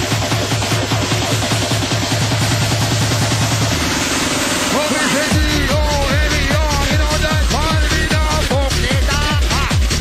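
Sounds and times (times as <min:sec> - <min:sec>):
electronic dance music: 0:00.0 - 0:10.0
steady bass: 0:00.0 - 0:10.0.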